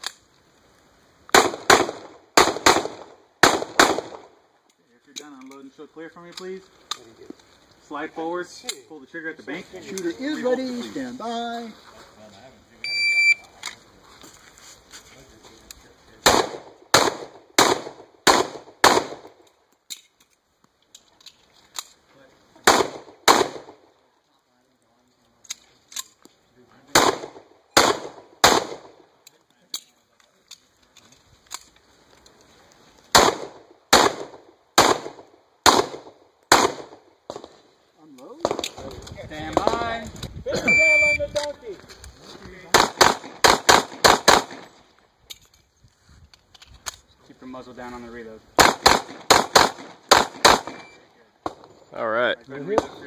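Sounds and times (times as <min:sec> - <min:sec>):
pistol shots: 0:01.3 - 0:04.3, 0:16.2 - 0:19.4, 0:22.6 - 0:23.8, 0:26.9 - 0:29.0, 0:33.1 - 0:37.6, 0:42.7 - 0:44.8, 0:48.6 - 0:51.7
shot timer beep: 0:12.8 - 0:13.4, 0:40.6 - 0:41.2.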